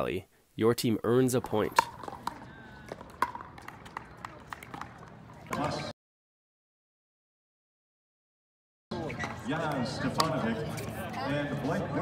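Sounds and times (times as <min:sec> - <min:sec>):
paddles striking plastic ball: 0:01.4 - 0:05.6
ball bouncing on court: 0:01.4 - 0:05.8.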